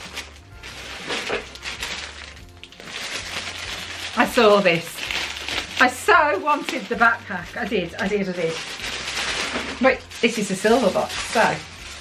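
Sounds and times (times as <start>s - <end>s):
plastic packaging crinkling: 0.0s - 12.0s
quiet background music with bass: 0.0s - 12.0s.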